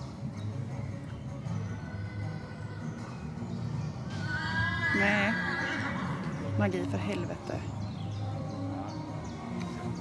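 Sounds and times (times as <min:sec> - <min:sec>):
horse whinnying: 0:04.1 - 0:06.6.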